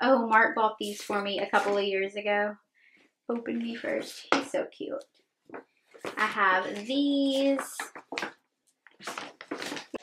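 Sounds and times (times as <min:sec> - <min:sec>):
paper bags rustling: 0:09.0 - 0:10.0.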